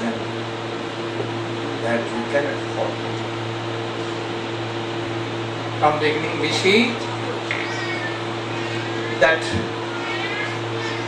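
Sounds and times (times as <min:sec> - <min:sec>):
electrical hum from loudspeakers: 0:00.0 - 0:11.0.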